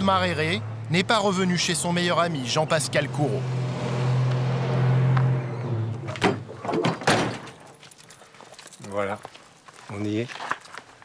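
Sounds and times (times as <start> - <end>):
truck engine running: 0.1 - 6.5
car door slamming: 5.9 - 7.6.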